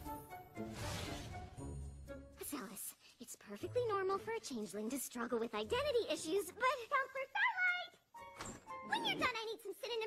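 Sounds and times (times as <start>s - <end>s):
background music: 0.0s - 10.0s
character speaking: 8.8s - 10.0s
cartoon character voice sound: 8.9s - 10.0s.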